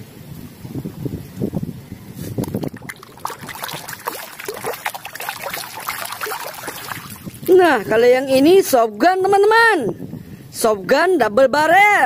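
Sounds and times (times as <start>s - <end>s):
water sloshing in a plastic basin: 2.3s - 8.0s.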